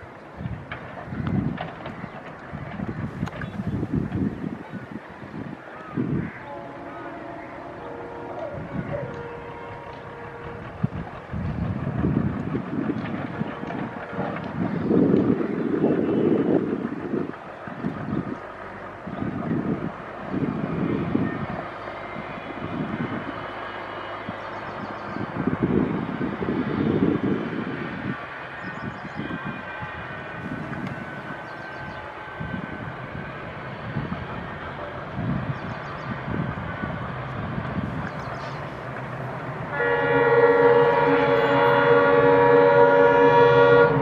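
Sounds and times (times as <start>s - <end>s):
diesel locomotive engine running: 0.0s - 44.0s
wind buffeting microphone: 0.0s - 44.0s.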